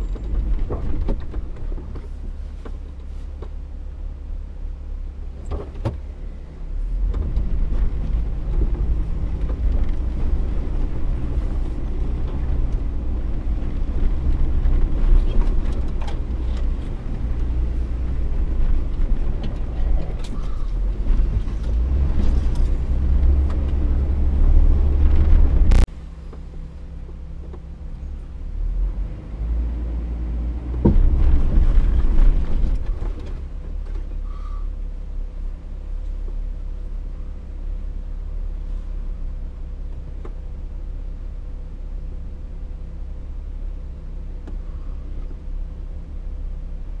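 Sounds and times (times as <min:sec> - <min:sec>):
vehicle engine rumbling: 0:00.0 - 0:47.0.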